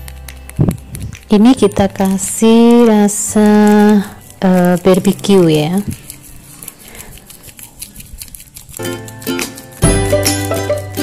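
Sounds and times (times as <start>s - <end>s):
background music: 0.0s - 6.3s, 8.8s - 11.0s
plastic sachet crinkling: 0.0s - 11.0s.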